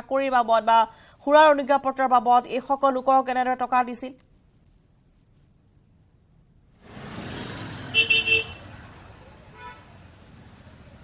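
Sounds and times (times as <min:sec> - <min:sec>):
street traffic noise: 0:06.7 - 0:11.0
vehicle horn tooting: 0:07.9 - 0:08.8, 0:09.5 - 0:09.9.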